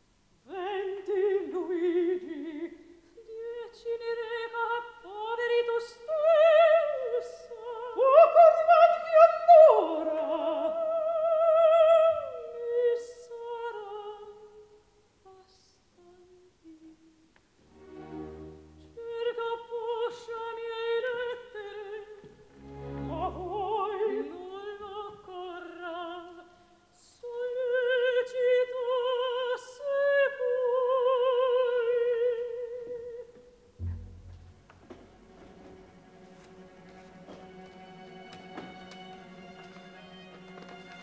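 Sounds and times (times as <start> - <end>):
soprano singing with vibrato: 0.4 - 17.3, 18.8 - 33.7
soft opera notes: 16.2 - 26.3, 28.9 - 41.0
soft orchestral accompaniment: 17.6 - 26.2, 30.4 - 41.0.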